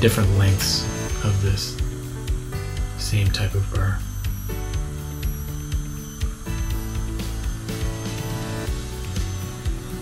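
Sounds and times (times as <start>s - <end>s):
background music: 0.0s - 10.0s
dental drill whine: 0.0s - 10.0s.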